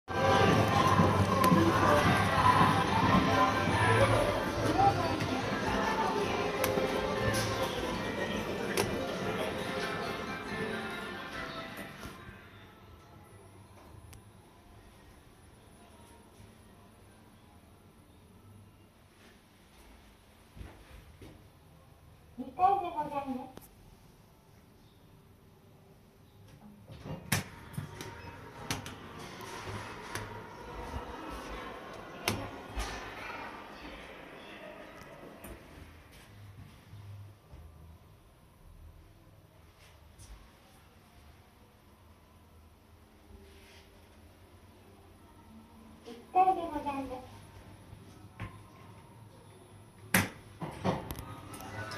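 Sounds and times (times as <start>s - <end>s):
people's voices: 0.1s - 11.9s
store background music: 0.1s - 19.2s, 26.8s - 37.4s.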